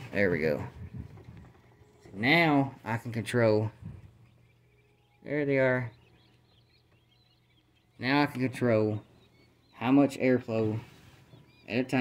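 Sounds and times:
quail chicks peeping: 0:00.0 - 0:12.0.

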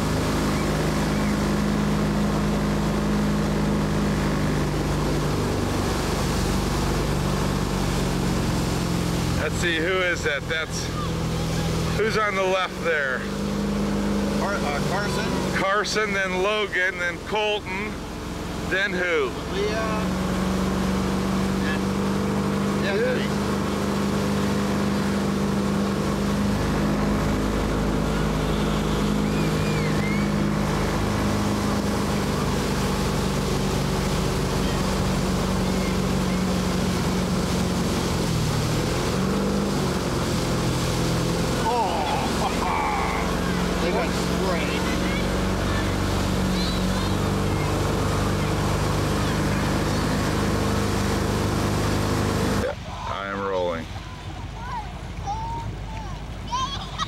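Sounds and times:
motorboat engine running: 0:00.0 - 0:57.0
wake water rushing: 0:00.0 - 0:57.0
wind: 0:00.0 - 0:57.0
voices: 0:09.2 - 0:13.5, 0:14.3 - 0:20.3, 0:22.7 - 0:23.5, 0:26.4 - 0:37.4, 0:41.5 - 0:51.2, 0:52.4 - 0:57.0.

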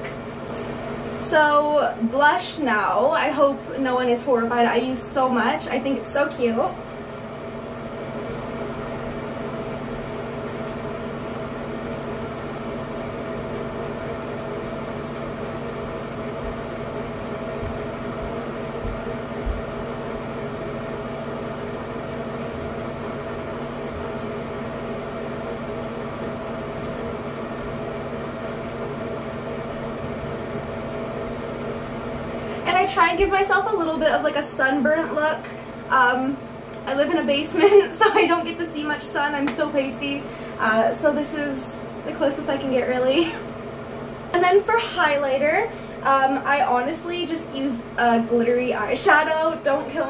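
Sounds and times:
exhaust fan humming: 0:00.0 - 0:50.0.

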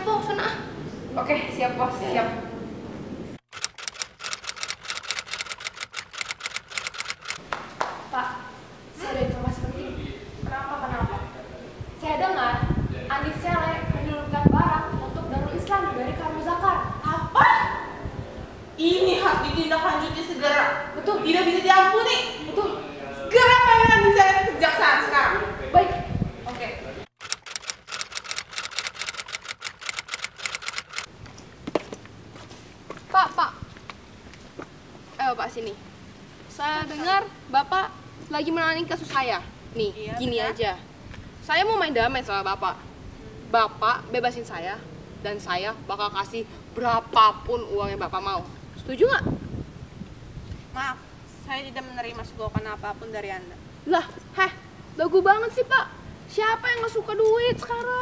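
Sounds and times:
typewriter keys clacking: 0:03.5 - 0:07.4, 0:27.2 - 0:31.1
sharp click: 0:03.5 - 0:07.5, 0:27.2 - 0:31.1.

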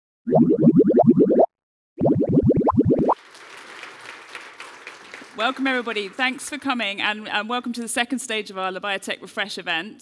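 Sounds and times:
bouncy rising blips: 0:00.3 - 0:03.2.

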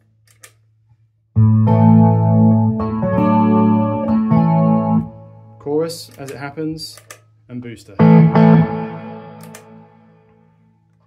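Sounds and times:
electric guitar chord ringing: 0:01.4 - 0:05.5, 0:08.0 - 0:10.4
footswitch click: 0:09.4 - 0:09.8.

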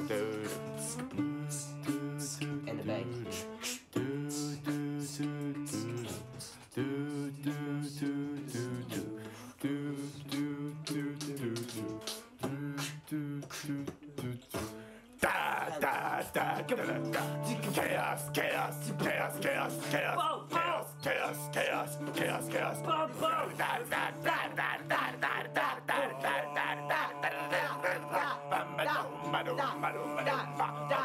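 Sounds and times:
guitar strumming chords: 0:00.0 - 0:12.7, 0:14.2 - 0:31.0
person singing do do: 0:00.0 - 0:31.0.

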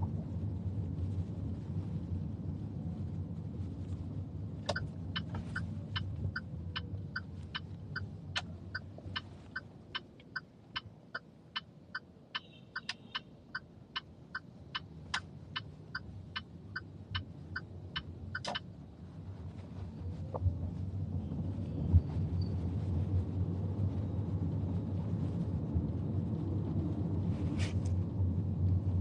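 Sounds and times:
car cabin rumble: 0:00.0 - 0:11.7
turn signal ticking: 0:04.6 - 0:18.8.

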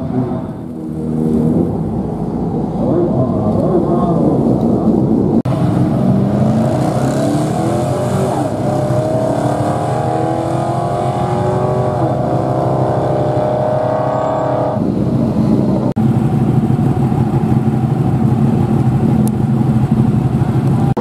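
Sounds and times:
car engine accelerating hard: 0:00.0 - 0:16.5
rough engine running steadily: 0:14.8 - 0:21.0.

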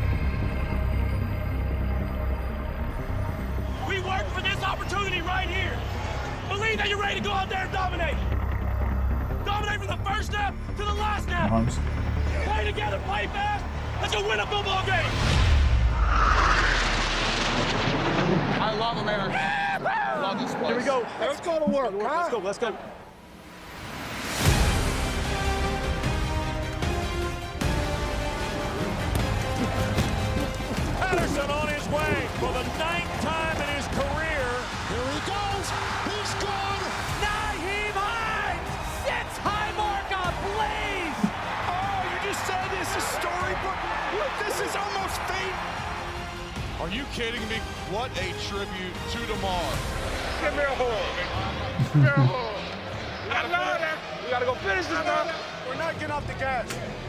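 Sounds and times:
music: 0:00.0 - 0:16.0, 0:23.4 - 0:57.0
loud roaring soundtrack noise: 0:23.0 - 0:57.0
excited shouting voices: 0:30.9 - 0:46.0.

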